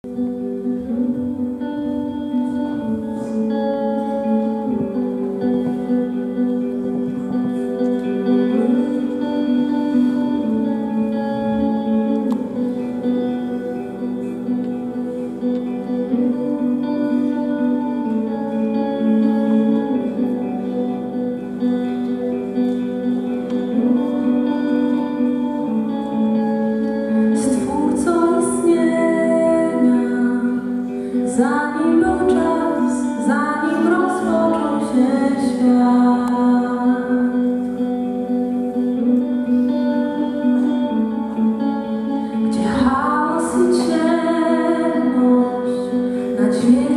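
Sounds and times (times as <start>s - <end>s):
bass guitar: 0.0s - 46.9s
electric guitar: 0.0s - 46.9s
keyboard chords: 0.0s - 46.9s.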